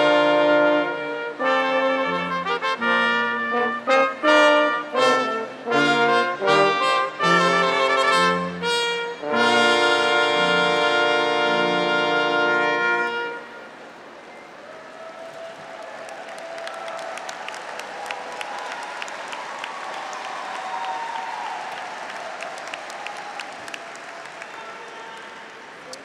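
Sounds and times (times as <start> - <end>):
brass chord: 0.0 - 13.8
crowd applauding and cheering: 14.4 - 26.0.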